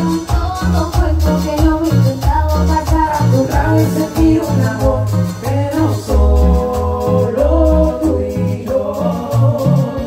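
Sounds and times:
live band with deep bass: 0:00.0 - 0:10.0
man singing: 0:00.0 - 0:10.0.

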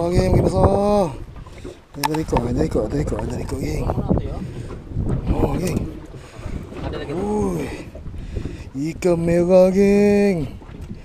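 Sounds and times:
wind rumbling on microphone: 0:00.0 - 0:11.0
people talking: 0:05.3 - 0:06.0, 0:06.8 - 0:07.8.

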